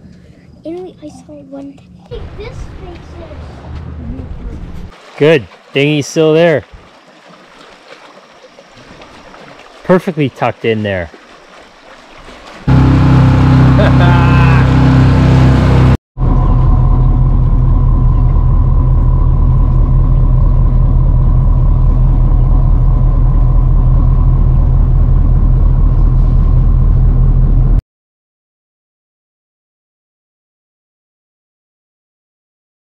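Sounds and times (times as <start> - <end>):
boat engine droning: 1.9 - 27.8
thin steady whine: 12.7 - 27.8.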